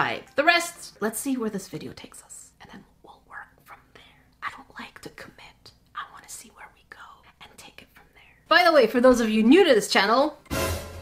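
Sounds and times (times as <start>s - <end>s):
woman whispering: 1.9s - 8.5s.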